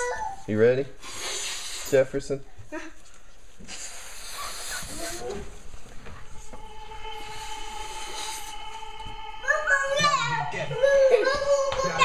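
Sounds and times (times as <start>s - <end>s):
air blown into balloon: 1.0s - 1.9s, 3.6s - 5.7s, 6.4s - 11.0s.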